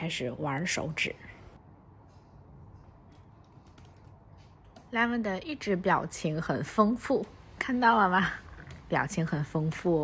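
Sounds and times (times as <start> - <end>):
laptop keyboard typing: 3.1 - 4.8.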